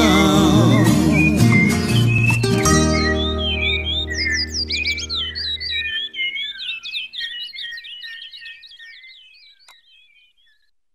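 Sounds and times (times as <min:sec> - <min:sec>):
birds chirping: 0:00.0 - 0:10.8.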